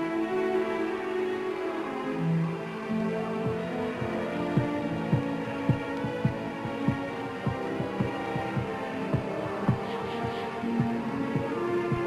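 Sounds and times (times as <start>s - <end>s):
heartbeat-like pulse: 4.6s - 12.0s.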